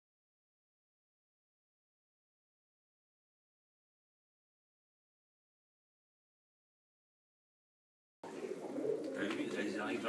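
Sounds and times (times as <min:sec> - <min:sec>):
faint pigeons cooing: 0:08.2 - 0:10.0.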